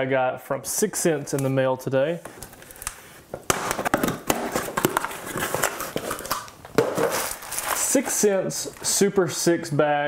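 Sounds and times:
packing tape tearing: 2.4 - 8.9
cardboard box being opened: 3.8 - 8.0.

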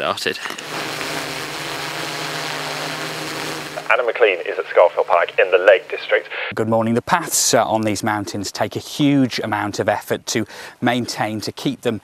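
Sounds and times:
drone propellers humming: 0.6 - 6.4
man speaking: 3.8 - 12.0.

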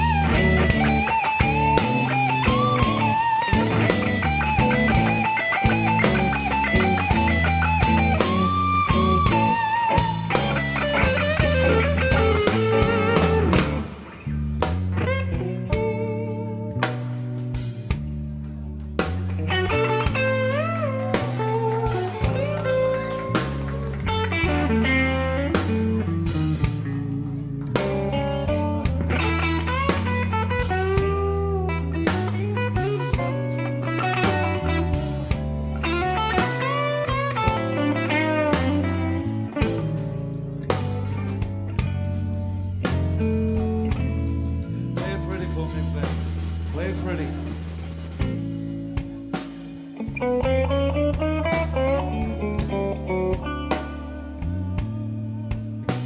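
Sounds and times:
bass and drums: 0.0 - 56.0
lead electric guitar bending notes: 0.0 - 56.0.

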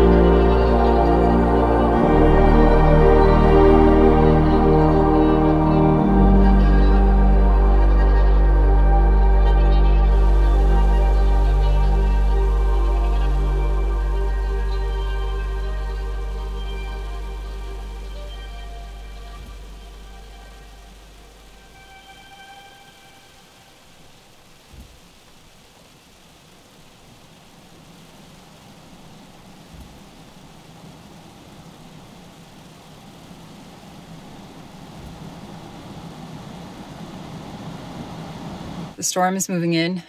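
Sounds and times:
soft background music: 0.0 - 25.0
snowstorm hiss: 0.0 - 39.8.

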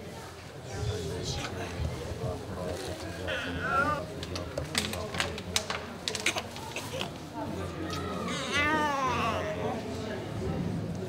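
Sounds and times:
faint voices: 0.0 - 11.0
baby crying: 3.3 - 4.0, 8.2 - 9.8.

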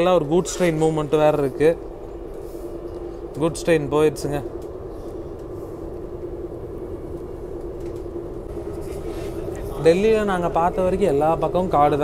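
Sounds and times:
train interior rumble: 0.0 - 12.0.

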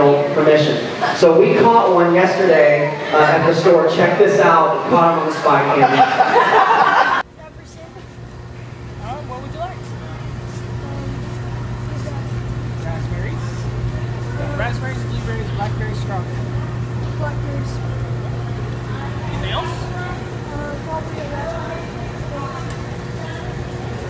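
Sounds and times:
indistinct voices: 0.0 - 24.0
steady low hum: 0.0 - 24.0.

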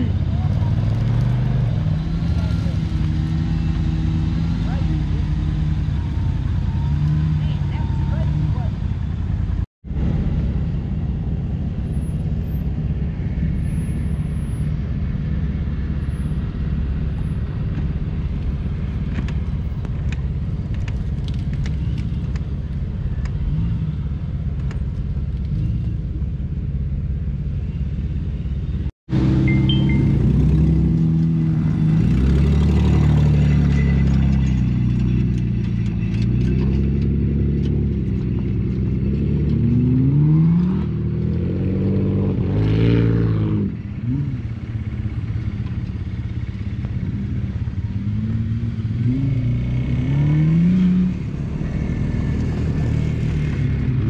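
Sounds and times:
engine revving: 29.1 - 44.5, 47.9 - 54.0.

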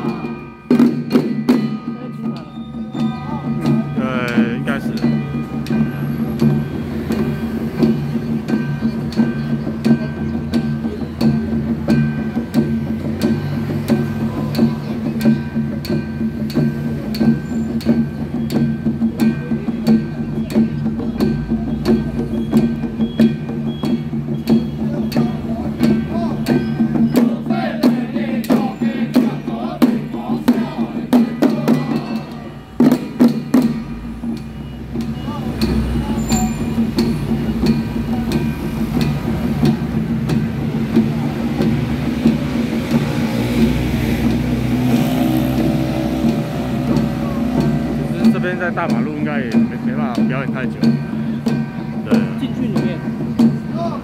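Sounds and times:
frame drums beaten rapidly: 0.0 - 54.0
men chanting in unison: 3.4 - 5.2, 24.9 - 32.5.

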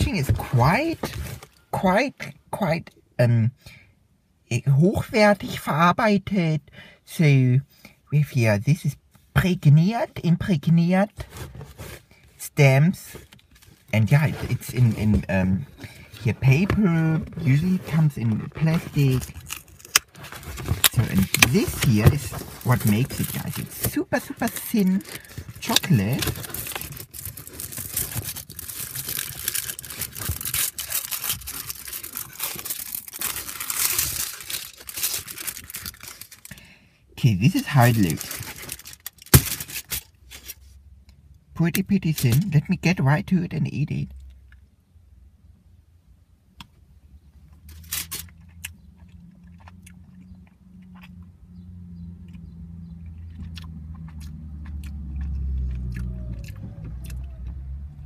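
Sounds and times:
foil wrapper crinkling and tearing: 17.4 - 36.6, 37.4 - 40.6, 47.7 - 48.4
chewing close to microphone: 48.2 - 57.7.

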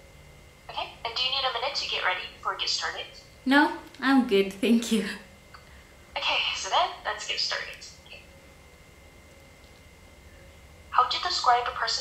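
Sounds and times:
faint steady hum: 0.0 - 12.0
person asking a question: 3.5 - 5.3
faint thin steady tones: 4.8 - 11.9.

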